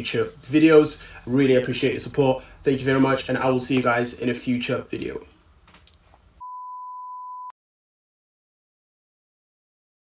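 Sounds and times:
electronic beep: 6.4s - 7.5s.

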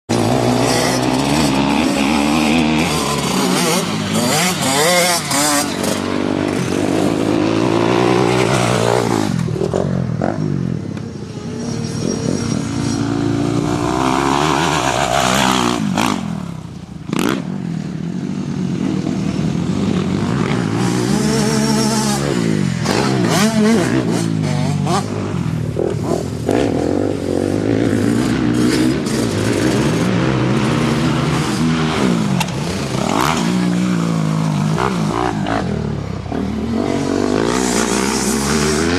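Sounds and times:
motocross bike engine revving: 0.1s - 38.9s.

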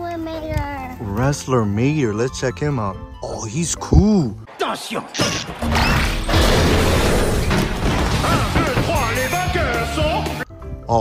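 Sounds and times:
mechanical clanking and crashing: 5.2s - 9.3s.

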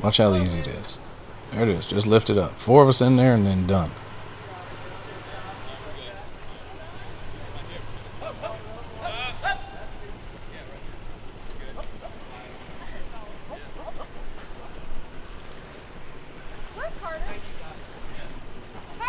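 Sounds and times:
distant voices calling out: 0.0s - 19.0s
low engine hum: 0.0s - 19.0s
water noise: 0.0s - 19.0s
wind: 0.0s - 19.0s.

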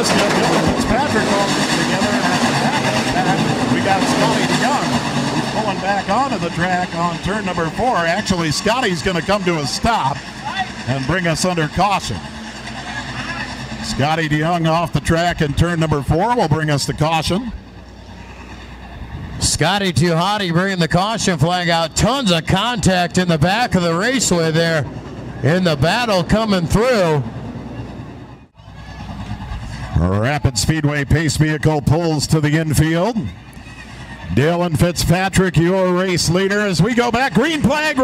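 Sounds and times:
race car engines droning: 0.0s - 38.0s.

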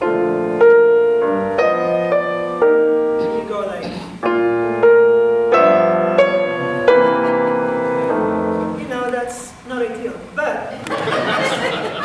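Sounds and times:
grand piano chords: 0.0s - 10.3s.

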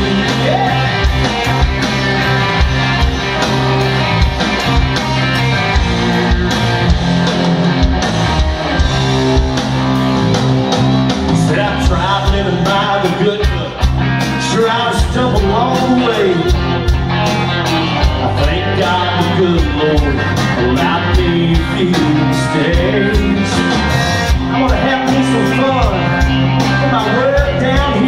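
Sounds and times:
drums keeping a steady beat: 0.0s - 28.0s
electric guitars: 0.0s - 28.0s.

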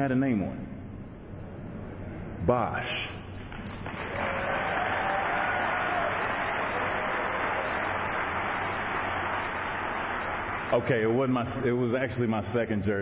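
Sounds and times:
audience applauding: 3.4s - 11.1s.

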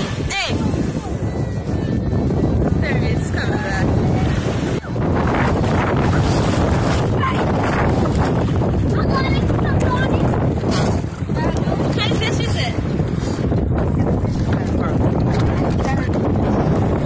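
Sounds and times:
sea water sloshing: 0.0s - 17.0s
wind rumbling on microphone: 0.0s - 17.0s.

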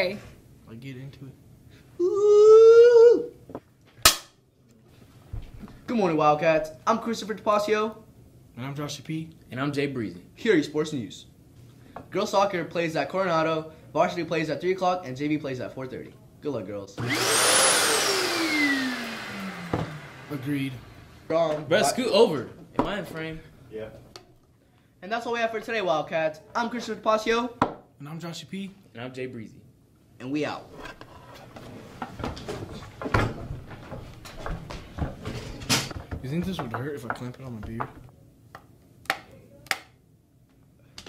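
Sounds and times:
vacuum cleaner motor spinning down: 17.0s - 21.3s.

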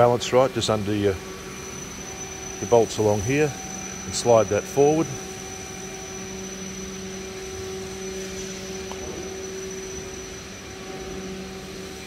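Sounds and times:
machine humming drone: 0.0s - 12.0s.

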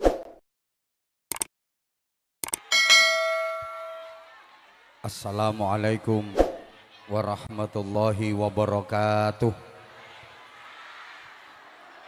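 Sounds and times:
bright bell chime ding: 2.7s - 4.3s.

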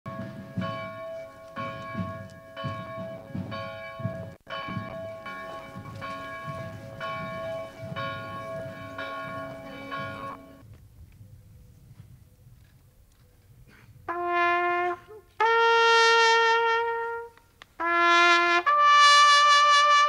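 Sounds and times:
church bell tolling: 0.1s - 10.6s.

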